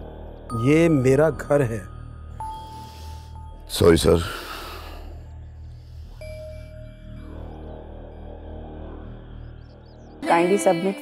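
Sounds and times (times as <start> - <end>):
low sustained drone: 0.0 - 11.0.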